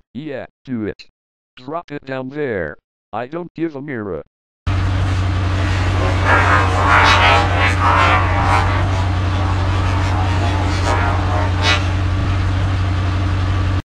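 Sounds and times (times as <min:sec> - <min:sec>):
rough engine noises: 0:04.7 - 0:13.8
truck engine running: 0:04.7 - 0:13.8.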